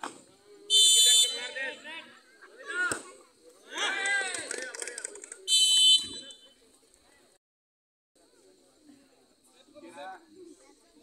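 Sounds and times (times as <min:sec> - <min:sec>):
referee's whistle blast: 0:00.7 - 0:01.6, 0:05.5 - 0:06.4.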